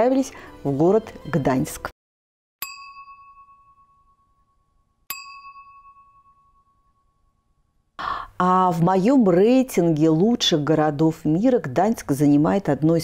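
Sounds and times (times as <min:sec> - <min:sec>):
bell-like chime dings: 0:02.6 - 0:07.8.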